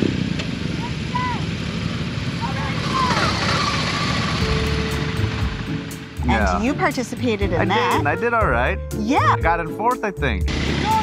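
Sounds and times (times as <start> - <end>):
motorcycle engines running: 0.0 - 8.7.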